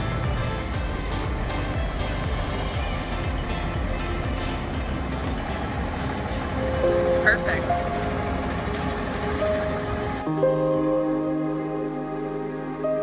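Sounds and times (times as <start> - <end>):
background music: 0.0 - 13.0
motorhome engine rumble: 0.0 - 13.0.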